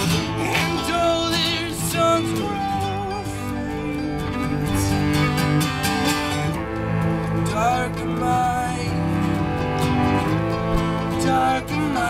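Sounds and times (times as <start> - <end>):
person singing: 0.0 - 5.5, 7.3 - 9.5, 11.0 - 12.0
fiddle and cello bowed: 0.0 - 12.0
strummed guitar and mandolin: 0.0 - 12.0.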